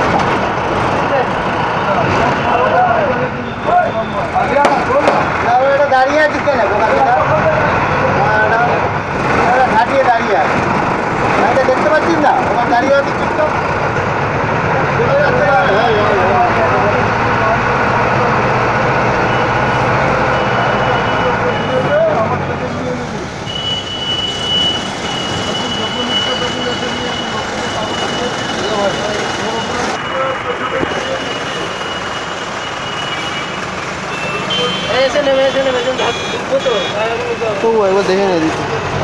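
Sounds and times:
diesel engine droning: 0.0 - 39.0
road noise: 0.0 - 39.0
voices in background: 0.9 - 24.0, 25.0 - 39.0.

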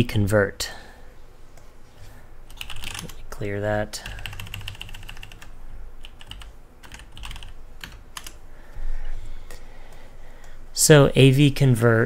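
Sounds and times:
computer keyboard typing: 2.5 - 3.2, 4.0 - 8.4.

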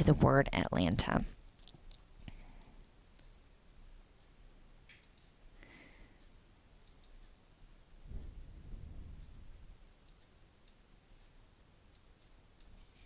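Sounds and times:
computer mouse clicks: 4.9 - 5.3, 6.8 - 7.2, 10.0 - 10.8.

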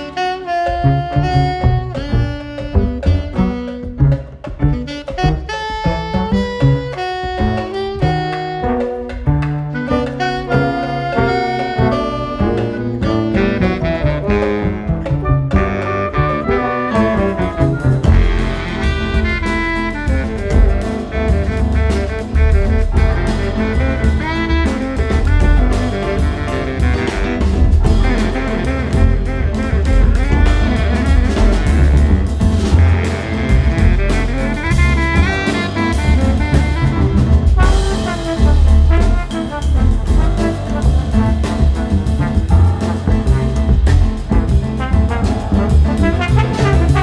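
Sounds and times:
drum kit: 0.0 - 47.0
piano: 0.0 - 47.0
trombone: 0.0 - 47.0
upright bass: 0.0 - 47.0
saxophones: 9.8 - 47.0.

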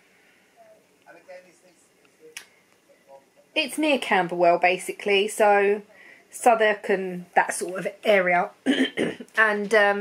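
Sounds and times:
quiet murmured speech: 0.5 - 3.6.

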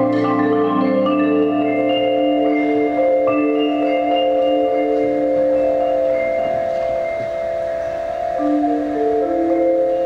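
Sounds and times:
marimbas holding a chord: 0.0 - 10.0.

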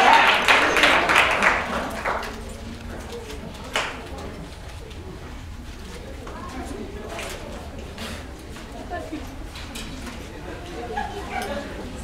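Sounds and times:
audience clapping and cheering: 0.0 - 2.7
low murmur of voices: 0.0 - 12.0.

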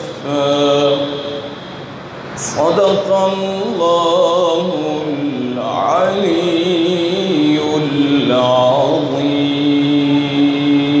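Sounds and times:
man chanting a long note: 0.0 - 1.7, 2.4 - 11.0.

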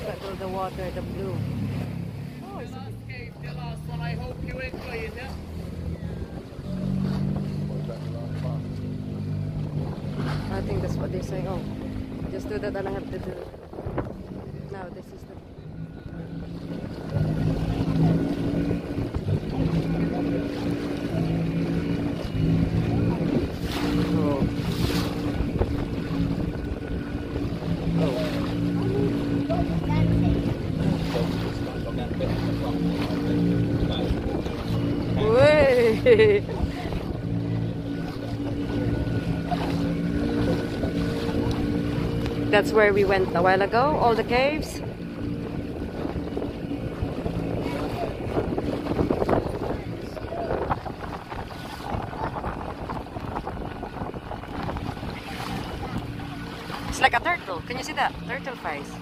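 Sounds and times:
motorboat engine running: 0.0 - 59.0
water rushing past hull: 0.0 - 59.0
wind on microphone: 9.2 - 59.0.

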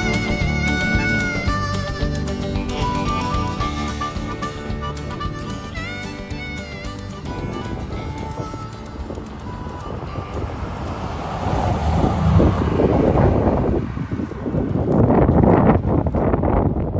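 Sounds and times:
song: 0.0 - 11.9
wind buffeting microphone: 0.0 - 16.9
car engine and tyres passing: 6.5 - 16.7.

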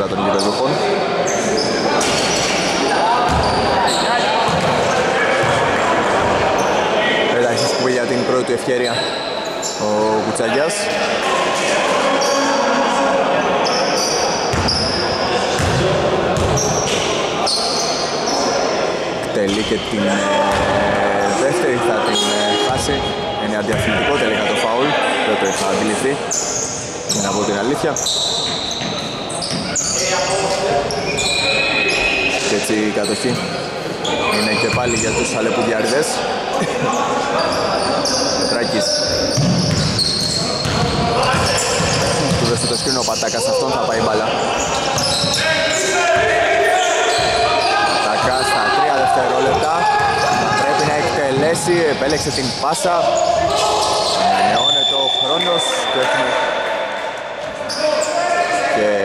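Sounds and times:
sneaker squeaks: 0.0 - 6.8, 8.8 - 9.9, 12.1 - 12.6, 13.6 - 18.7, 22.0 - 35.9, 36.8 - 56.4, 57.2 - 58.6
players' voices: 0.0 - 59.0
basketball bouncing on wooden court: 3.3 - 3.6, 4.5 - 4.8, 14.5 - 14.8, 15.6 - 16.6, 39.3 - 42.6.

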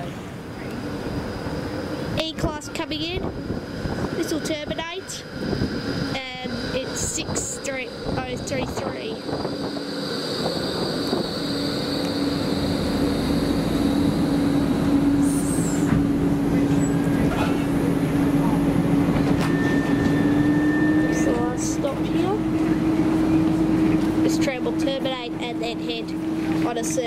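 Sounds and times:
voices: 0.0 - 12.5, 15.2 - 27.0
electrical hum: 0.0 - 27.0
tram rolling past: 0.0 - 27.0.

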